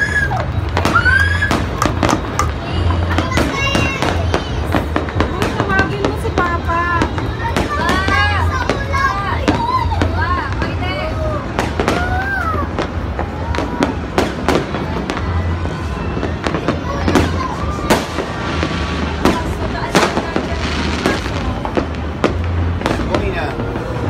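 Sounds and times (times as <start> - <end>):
fireworks bangs: 0.0 - 24.0.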